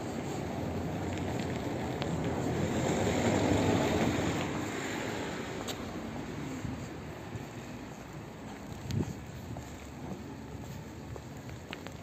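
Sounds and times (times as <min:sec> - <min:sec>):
street noise rush: 0:00.0 - 0:12.0.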